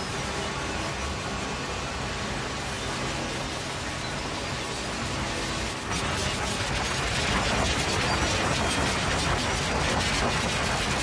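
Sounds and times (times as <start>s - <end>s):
dense crackle of rapid clicks: 5.9s - 11.0s.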